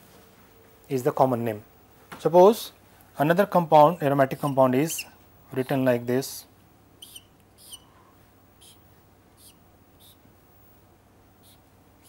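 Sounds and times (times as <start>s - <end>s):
marker squeaking on whiteboard: 3.6s - 5.2s, 7.0s - 7.9s, 8.6s - 8.8s, 9.4s - 10.2s, 11.4s - 11.7s.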